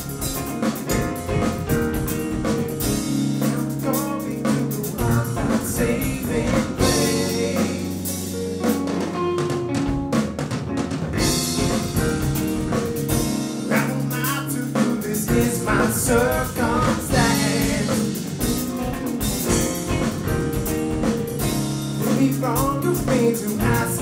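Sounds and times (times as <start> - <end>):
bass guitar: 0.0 - 24.0
drum kit: 0.0 - 24.0
electric guitar: 0.0 - 24.0
keyboards: 0.0 - 24.0.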